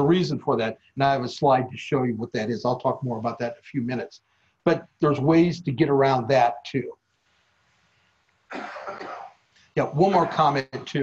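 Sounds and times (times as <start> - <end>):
person coughing: 8.5 - 9.4, 10.1 - 11.0.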